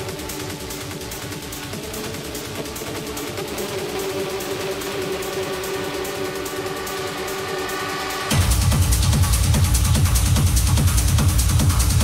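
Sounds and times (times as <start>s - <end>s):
fast ticking hi-hats: 0.0s - 12.0s.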